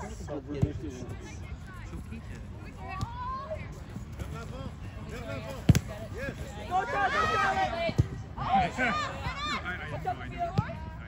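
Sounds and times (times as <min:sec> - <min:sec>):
players and spectators voices: 0:00.0 - 0:11.0
soccer ball kick thud: 0:05.4 - 0:06.0.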